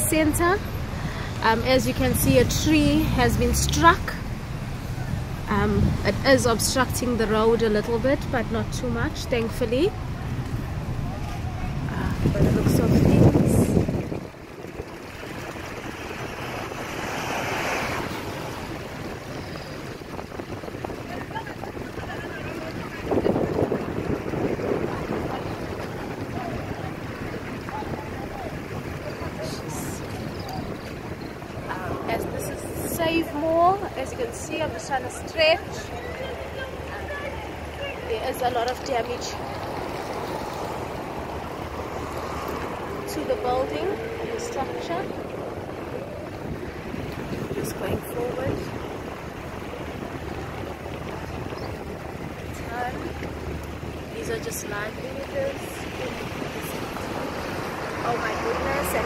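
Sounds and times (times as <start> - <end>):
tyres on wet road: 0.0 - 59.0
wind buffeting microphone: 0.0 - 59.0
car engine: 35.4 - 59.0.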